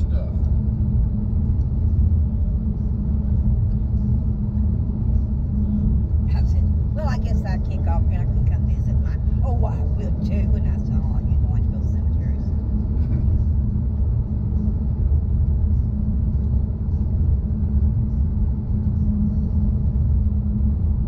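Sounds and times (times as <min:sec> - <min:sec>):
car cabin road and engine rumble: 0:00.0 - 0:21.0.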